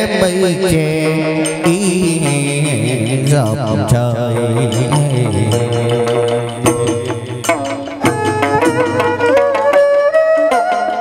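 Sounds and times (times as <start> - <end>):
man singing: 0.0 - 9.0
sharp percussion strokes: 0.0 - 11.0
plucked lute: 1.5 - 11.0.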